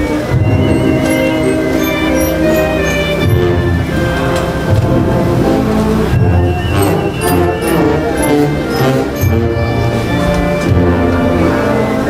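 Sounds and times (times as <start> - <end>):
drum and cymbal strokes: 0.0 - 11.1
band playing funeral march: 0.0 - 12.0.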